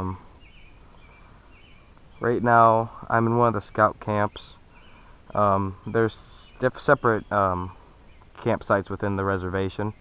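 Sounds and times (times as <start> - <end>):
lakeside background: 0.0 - 10.0.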